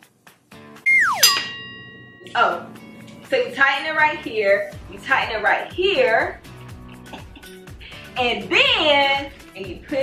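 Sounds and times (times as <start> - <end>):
tone sliding down in pitch: 0.9 - 1.6
bright metallic ding: 0.9 - 2.6
quiet background music: 2.0 - 10.0.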